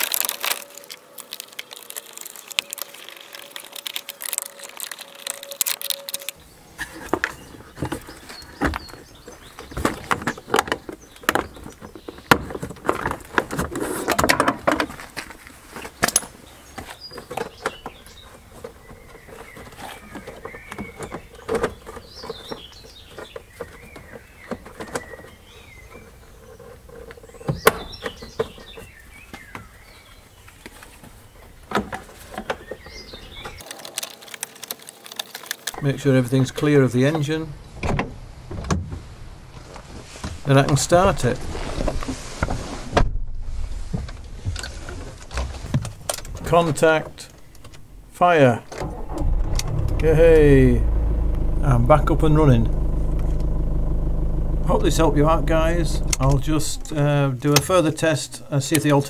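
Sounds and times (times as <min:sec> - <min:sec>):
faint birds chirping: 0:06.3 - 0:13.1, 0:15.8 - 0:33.8, 0:46.4 - 0:59.0.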